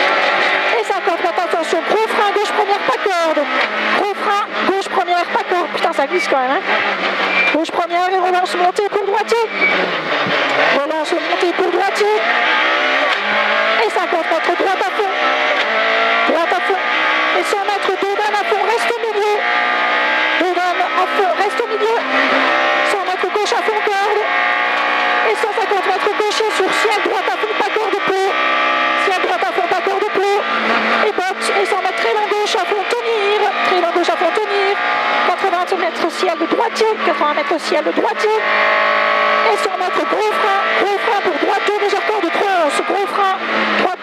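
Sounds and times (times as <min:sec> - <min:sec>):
rally car engine revving: 0:00.0 - 0:44.0.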